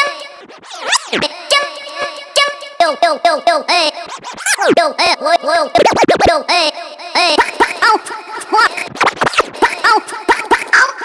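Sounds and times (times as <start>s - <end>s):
electronic dance music: 0.0s - 6.5s, 7.3s - 10.8s
chopped cartoon voice syllables: 0.0s - 11.0s.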